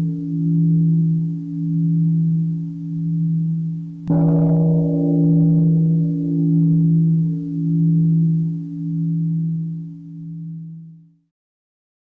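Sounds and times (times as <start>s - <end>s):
deep bell ringing: 0.0s - 10.8s.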